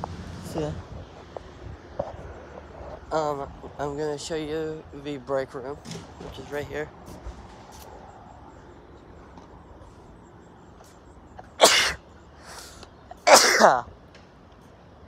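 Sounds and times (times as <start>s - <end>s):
man sneezing: 11.6s - 12.0s, 13.2s - 13.9s.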